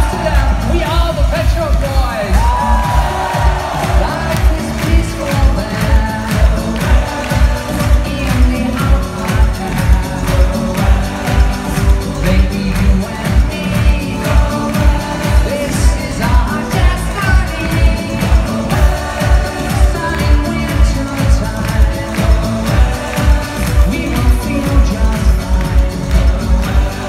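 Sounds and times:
live synth-pop song through pa: 0.0s - 27.0s
steady dance beat: 0.0s - 27.0s.

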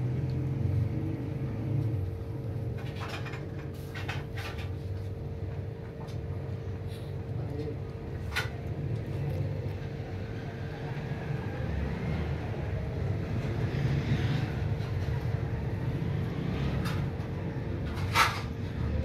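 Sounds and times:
low rumble with hum: 0.0s - 19.0s.

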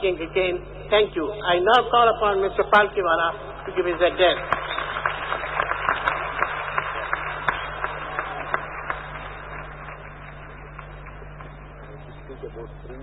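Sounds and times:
low hum: 0.0s - 13.0s
audience applauding: 3.7s - 11.6s.

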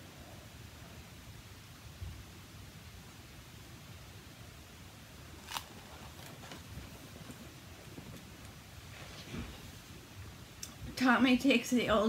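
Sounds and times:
page turning: 5.4s - 9.4s
book handling: 5.4s - 9.6s.

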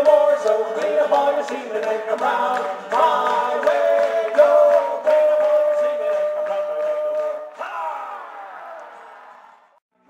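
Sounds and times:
audience cheering: 4.4s - 9.8s
falling shout: 7.6s - 9.5s.

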